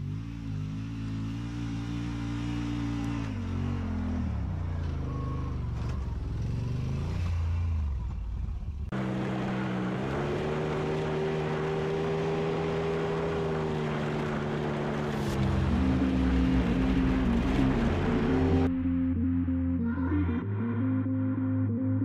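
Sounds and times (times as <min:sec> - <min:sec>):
engines revving: 0:00.0 - 0:18.8
engine running steadily: 0:07.8 - 0:18.8.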